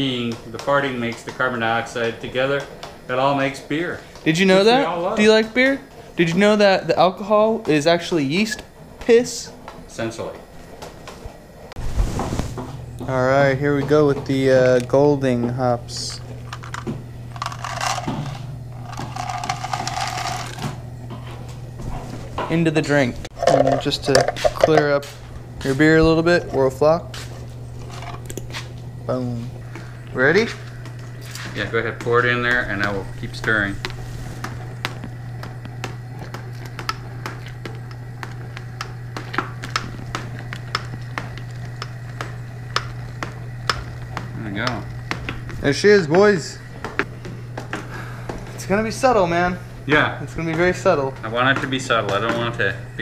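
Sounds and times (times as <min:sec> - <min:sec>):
burner low hum: 0:00.0 - 0:53.0
liquid boiling and bubbling: 0:05.4 - 0:53.0.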